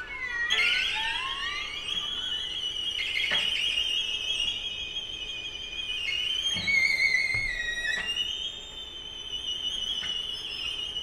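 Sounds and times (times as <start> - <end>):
string quartet glissandi: 0.0 - 4.3.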